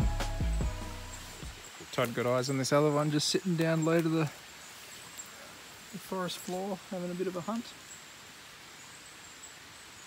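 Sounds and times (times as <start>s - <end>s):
high insect drone: 0.0s - 10.0s
steady low hiss: 0.0s - 10.0s.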